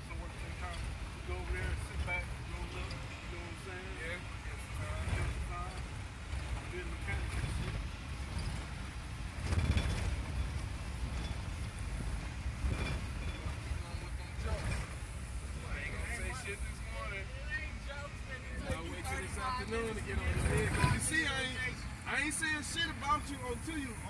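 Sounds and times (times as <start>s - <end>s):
vehicle road and engine noise: 0.0s - 24.0s.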